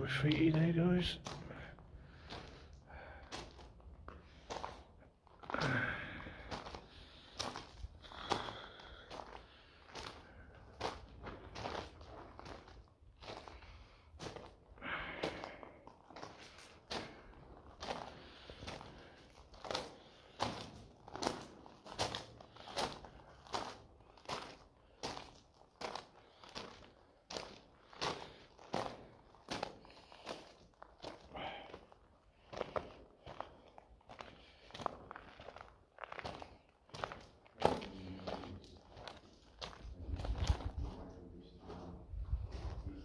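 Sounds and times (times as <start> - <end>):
footsteps crunching on gravel: 0.0 - 43.0.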